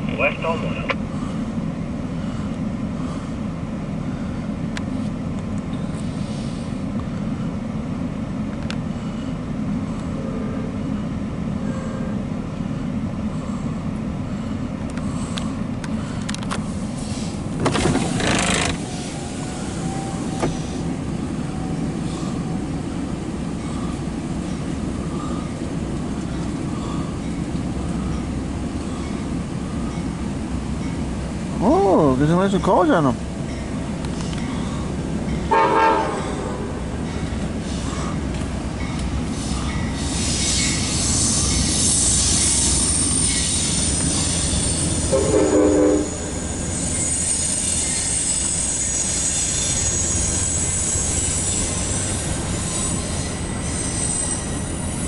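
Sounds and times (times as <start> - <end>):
diesel locomotive rumbling: 0.0 - 55.0.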